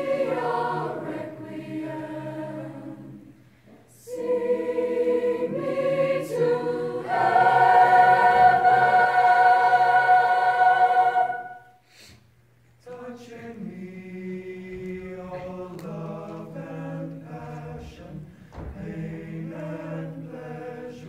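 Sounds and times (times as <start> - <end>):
mixed choir singing: 0.0 - 11.8, 12.8 - 21.0.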